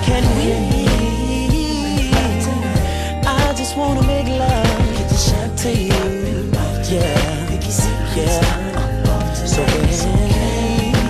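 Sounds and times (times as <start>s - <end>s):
r and b music with beat: 0.0s - 11.0s.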